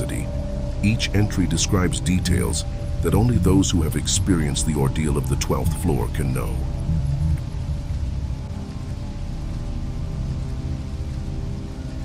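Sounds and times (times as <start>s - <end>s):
dark ambient drone music: 0.0s - 12.0s
steady rain: 0.0s - 12.0s.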